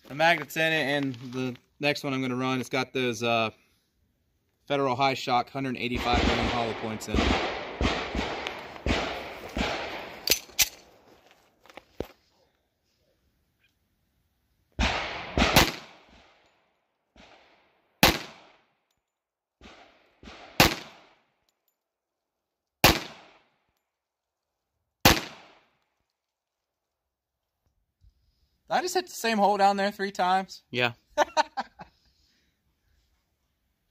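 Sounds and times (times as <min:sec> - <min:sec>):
pistol shots with echo: 0:05.9 - 0:10.8, 0:14.8 - 0:16.4, 0:18.0 - 0:18.6, 0:19.6 - 0:21.2, 0:22.8 - 0:23.4, 0:25.0 - 0:25.7.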